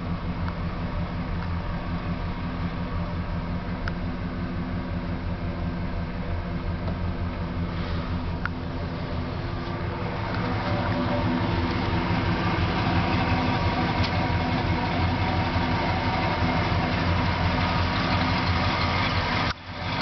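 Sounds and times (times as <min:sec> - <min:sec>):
van engine idling: 0:00.0 - 0:20.0.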